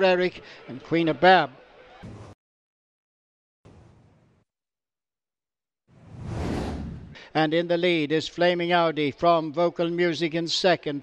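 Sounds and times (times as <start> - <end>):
whoosh transition effect: 5.9 - 7.2.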